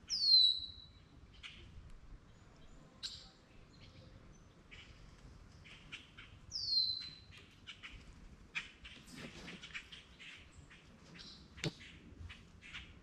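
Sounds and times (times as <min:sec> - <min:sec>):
birds chirping: 0:00.0 - 0:13.0
descending whistled bird call: 0:00.1 - 0:00.9, 0:06.5 - 0:07.2.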